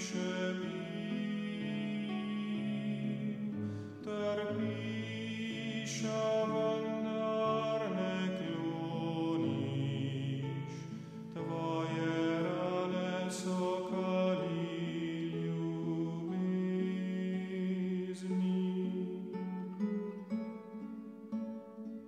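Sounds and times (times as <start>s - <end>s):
choir singing a hymn: 0.0s - 20.3s.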